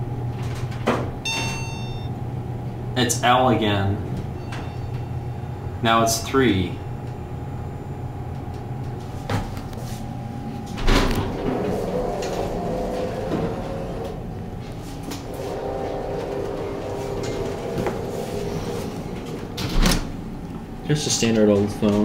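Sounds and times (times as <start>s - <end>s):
elevator hum and whine: 0.0s - 22.0s
wavering tone: 1.3s - 2.1s, 4.4s - 5.7s.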